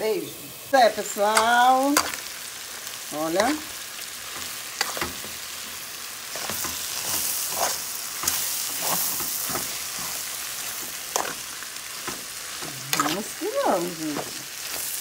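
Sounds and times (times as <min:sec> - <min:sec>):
beans sizzling in a pot: 0:00.0 - 0:15.0
spoon scraping a pot: 0:04.4 - 0:05.3.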